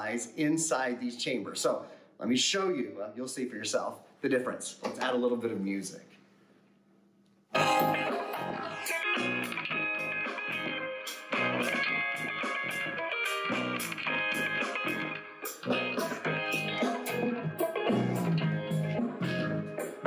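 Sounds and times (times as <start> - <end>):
guitar music with drum beat: 7.6 - 20.0.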